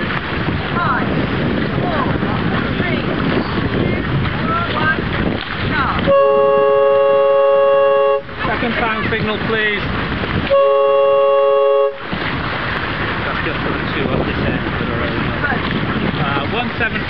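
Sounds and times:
water splashing: 0:00.0 - 0:17.0
wind buffeting microphone: 0:00.0 - 0:17.0
boat horn blast: 0:06.0 - 0:09.0, 0:10.4 - 0:12.3.

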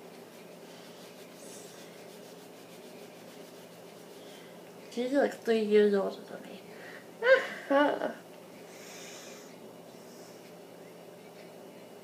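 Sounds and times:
low steady room hum: 0:00.0 - 0:12.0
faint rubbing and scraping: 0:00.3 - 0:04.5.

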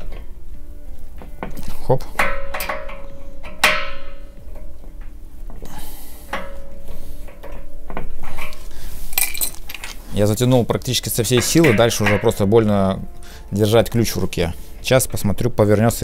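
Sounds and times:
wrenches clinking and scraping: 0:01.4 - 0:04.8, 0:06.3 - 0:12.7.

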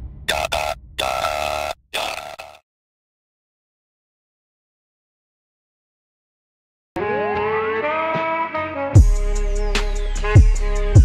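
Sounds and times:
chopped buzzy synth bursts: 0:00.3 - 0:02.6.

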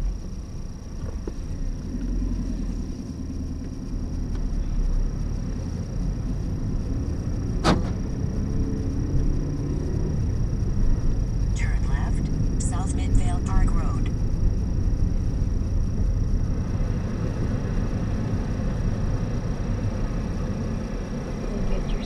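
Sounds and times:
car engine running low: 0:00.0 - 0:22.0
road rumble: 0:00.0 - 0:22.0.

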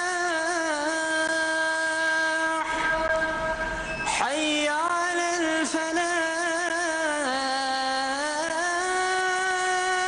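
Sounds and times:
person chanting call to prayer: 0:00.0 - 0:10.0.

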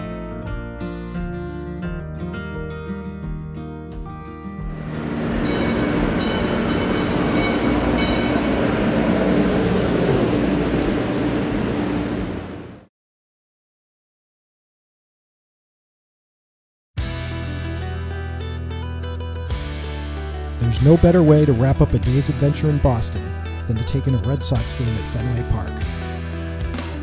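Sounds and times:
guitar background music: 0:00.0 - 0:09.6, 0:17.0 - 0:27.0
light-rail train running: 0:04.7 - 0:12.9
high-pitched squeals: 0:04.8 - 0:12.6.

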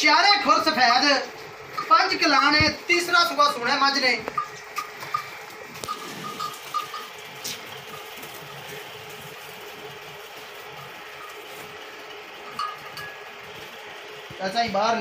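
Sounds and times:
steady background noise: 0:00.0 - 0:15.0
small bell clinking: 0:04.4 - 0:07.2, 0:12.5 - 0:13.3.

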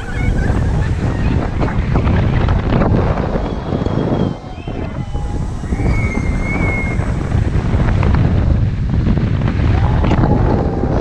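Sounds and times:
wind buffeting camera microphone: 0:00.0 - 0:11.0.

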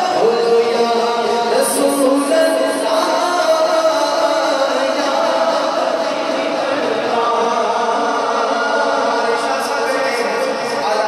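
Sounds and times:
men chanting unaccompanied: 0:00.0 - 0:11.0.

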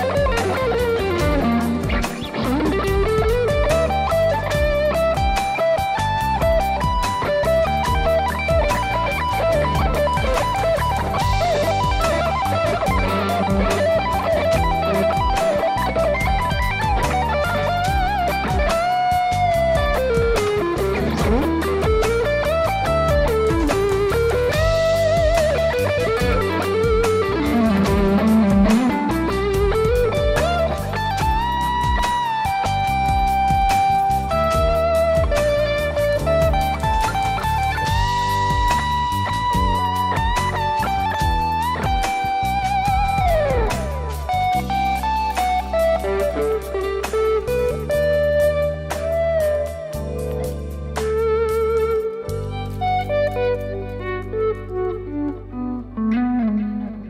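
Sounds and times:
bass and drums backing: 0:00.0 - 0:57.0
lead electric guitar: 0:00.0 - 0:57.0.

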